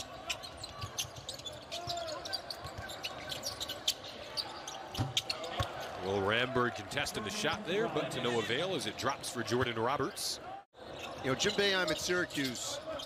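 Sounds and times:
sneaker squeaks: 0.0 - 5.9
arena crowd noise: 0.0 - 13.0.

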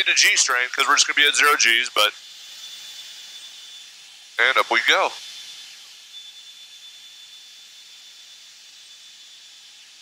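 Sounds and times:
intercom hiss: 0.0 - 2.2, 4.4 - 5.2.

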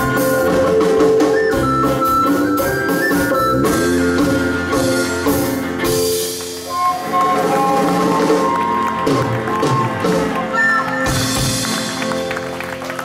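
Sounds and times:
jazz band playing: 0.0 - 13.0
flute holding long notes: 1.2 - 5.4, 6.6 - 11.2.

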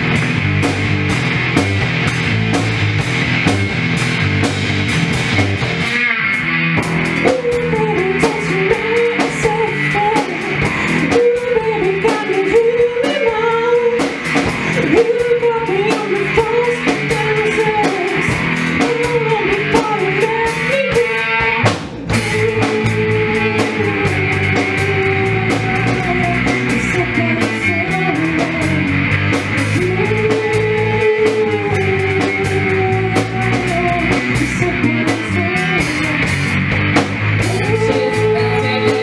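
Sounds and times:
drum kit: 0.0 - 39.0
electric guitar: 0.0 - 39.0
person singing: 7.1 - 29.0, 29.6 - 36.6, 37.4 - 39.0.

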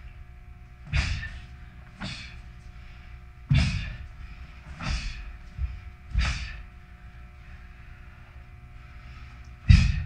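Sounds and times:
feet thudding on floor: 3.5 - 6.6.

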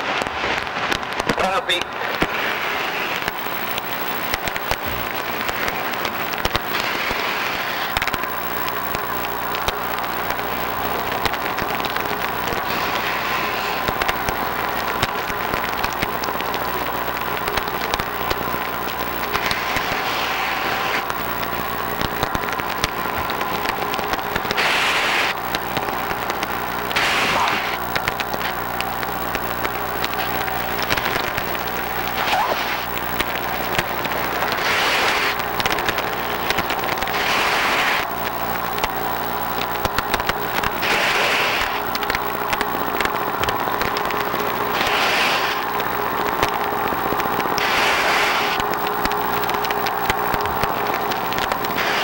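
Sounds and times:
dense crackle of clicks: 0.0 - 52.0
low machine hum: 1.6 - 52.0.

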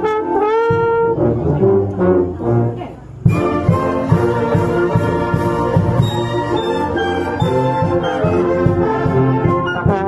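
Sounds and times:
low brass accompaniment: 0.0 - 10.0.

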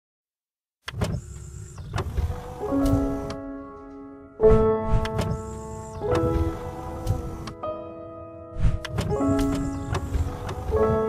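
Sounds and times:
low mechanical whir: 0.9 - 3.4, 9.0 - 11.0.

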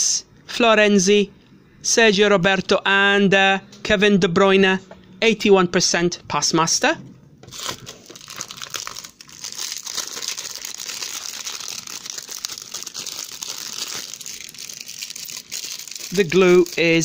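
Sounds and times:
foil wrappers crumpling: 7.5 - 17.0.

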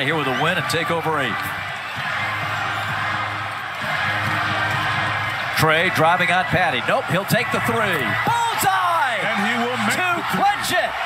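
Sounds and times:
arena crowd noise: 0.0 - 11.0
music over sound system: 1.3 - 8.2.

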